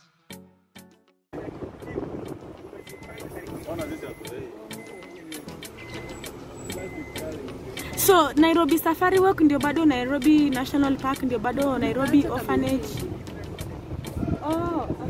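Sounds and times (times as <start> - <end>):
background music: 0.0 - 15.0
faint voices: 1.4 - 15.0.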